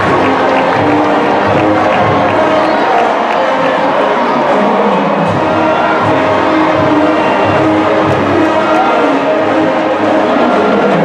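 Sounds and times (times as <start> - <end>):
brass section holding chords: 0.0 - 11.0
drumline beat: 0.0 - 11.0.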